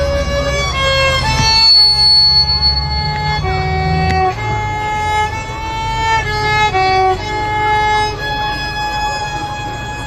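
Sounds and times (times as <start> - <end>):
solo violin slow melody: 0.0 - 10.0.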